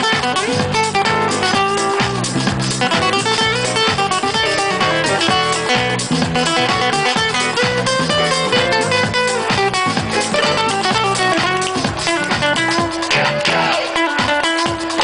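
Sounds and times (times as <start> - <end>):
acoustic guitar melody: 0.0 - 15.0
keyboard: 0.0 - 15.0
steady percussion beat: 0.0 - 15.0.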